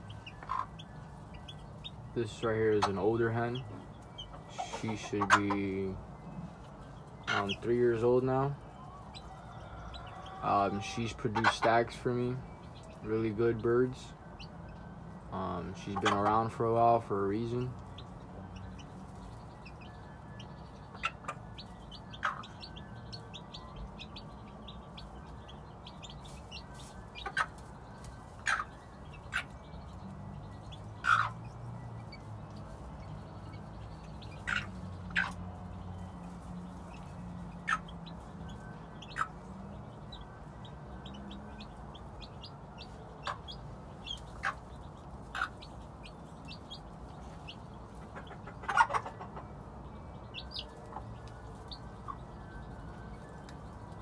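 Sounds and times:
hen clucking: 0.0s - 14.5s, 15.4s - 52.8s
chicks peeping: 0.0s - 54.0s.

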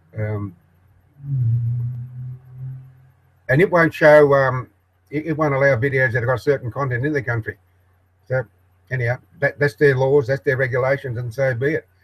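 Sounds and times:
man humming: 0.2s - 0.5s, 1.2s - 3.0s.

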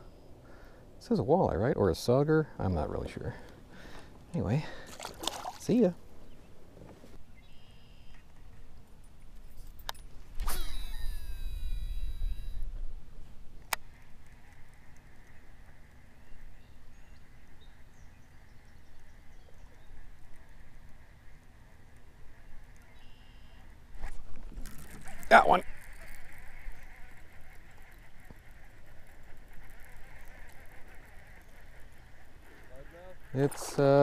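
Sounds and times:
fishing line whirring off spool: 9.6s - 12.7s, 24.5s - 32.8s.

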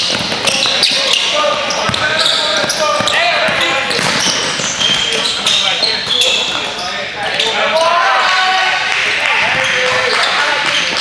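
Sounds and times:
basketball bouncing on wooden floor: 0.0s - 5.1s
voices echoing in hall: 0.0s - 11.0s.

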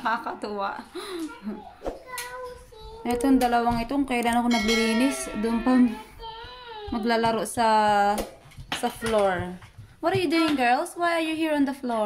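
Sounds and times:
young child singing softly: 2.1s - 3.1s, 6.0s - 6.9s.

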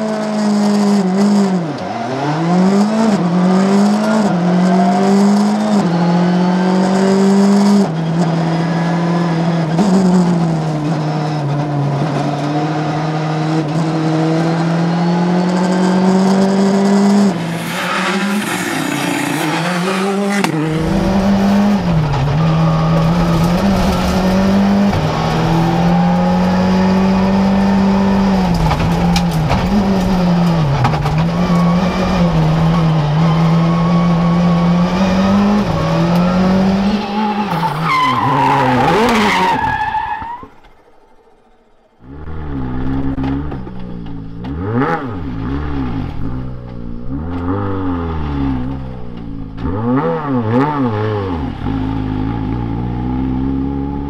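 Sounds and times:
rally car engine at high revs: 0.0s - 54.0s
rally car engine revving outside: 0.0s - 54.0s.

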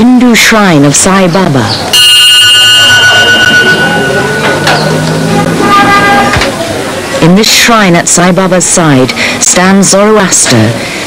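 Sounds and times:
voices: 0.0s - 10.9s
traffic noise: 0.0s - 11.0s
car horns sounding: 2.0s - 6.8s.

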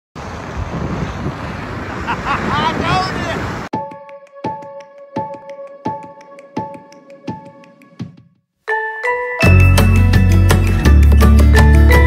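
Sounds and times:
wind buffeting microphone: 0.2s - 3.7s.

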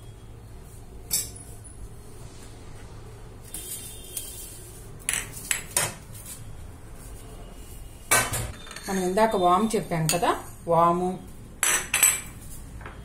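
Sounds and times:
plates clinking on a countertop: 8.1s - 9.2s, 11.6s - 13.0s.

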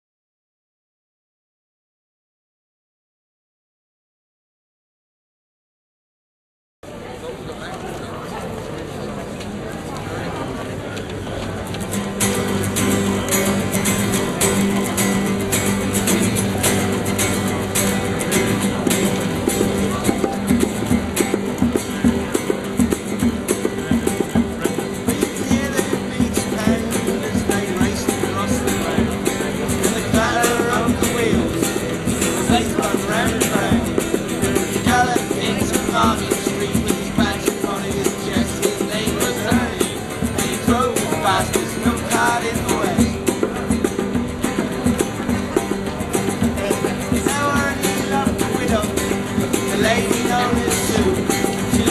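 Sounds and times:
acoustic guitars strumming: 11.1s - 51.9s
hand drum beats: 12.0s - 51.9s
person singing: 25.1s - 43.4s.

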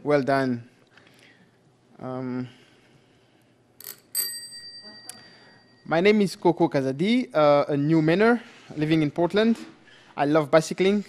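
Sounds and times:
bicycle bell ringing: 3.8s - 6.1s.

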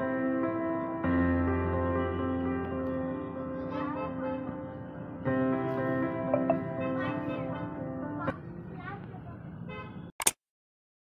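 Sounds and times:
background music: 0.0s - 8.3s
traffic noise: 4.7s - 10.1s.

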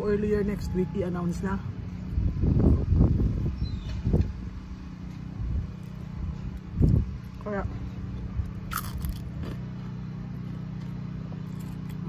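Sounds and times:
steady low hum: 0.0s - 12.0s
wind buffeting microphone: 2.1s - 4.6s.

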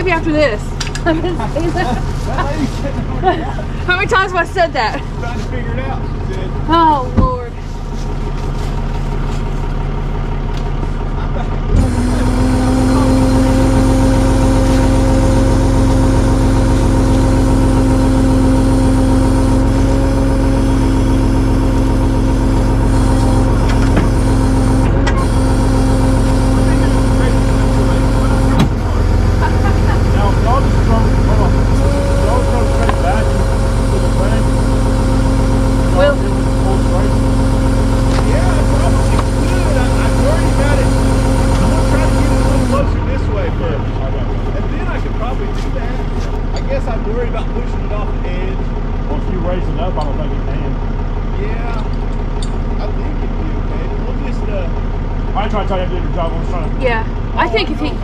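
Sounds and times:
vehicle engine running: 0.0s - 58.0s.

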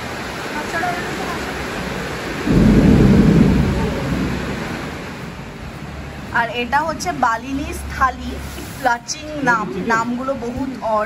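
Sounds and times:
steady rain hiss: 0.0s - 11.0s
low rumble of thunder: 1.7s - 8.0s.

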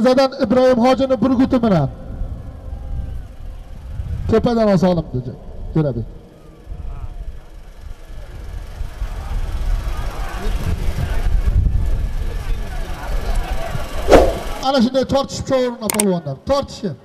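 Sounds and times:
low rumble: 1.6s - 9.3s, 14.0s - 14.6s
faint crowd shouting: 2.4s - 3.9s.

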